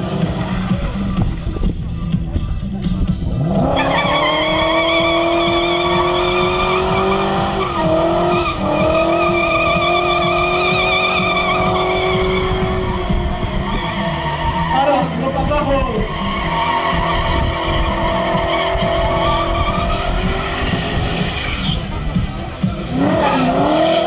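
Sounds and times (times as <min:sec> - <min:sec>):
car engine at high revs: 0:02.9 - 0:24.0
tyres squealing: 0:03.7 - 0:15.3.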